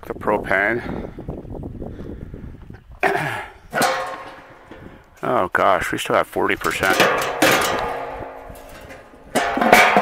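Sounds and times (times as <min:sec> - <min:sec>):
man coughing: 0:03.0 - 0:03.6.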